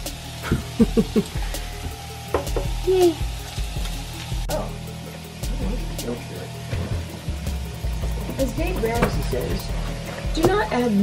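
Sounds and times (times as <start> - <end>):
meat and egg sizzling in a pan: 0.0 - 4.5.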